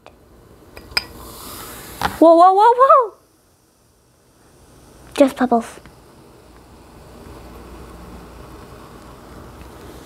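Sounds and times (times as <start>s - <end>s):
fizzing hiss of foaming mixture: 1.0s - 10.0s.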